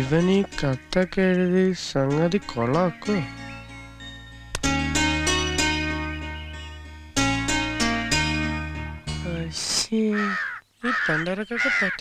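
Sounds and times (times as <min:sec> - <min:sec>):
crow cawing: 0:10.1 - 0:12.0.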